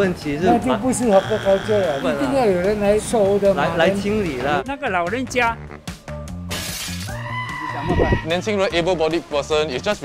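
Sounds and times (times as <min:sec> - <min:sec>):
wrong-answer buzzer: 0:01.0 - 0:02.4.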